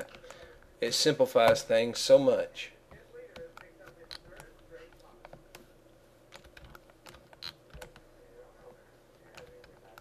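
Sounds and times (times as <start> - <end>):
faint steady hum: 0.0 - 10.0
computer keyboard and mouse clicks: 6.3 - 8.1, 9.3 - 10.0.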